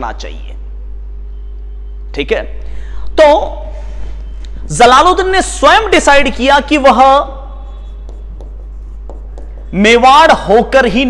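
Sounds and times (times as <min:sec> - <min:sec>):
steady low hum: 0:00.0 - 0:11.0
chalk tapping and scratching: 0:07.6 - 0:10.1.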